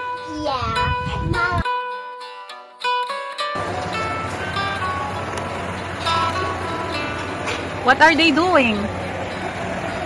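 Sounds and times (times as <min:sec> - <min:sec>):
plucked-string background music: 0:00.0 - 0:10.0
steady noisy hum: 0:03.6 - 0:10.0.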